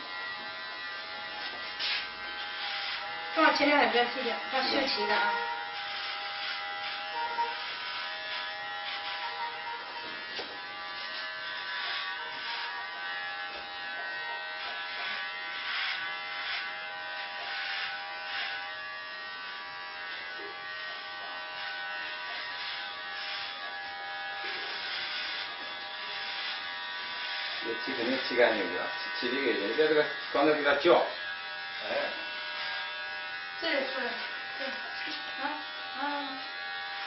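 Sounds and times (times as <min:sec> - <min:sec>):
electric hair clippers buzzing: 0:00.0 - 0:37.0.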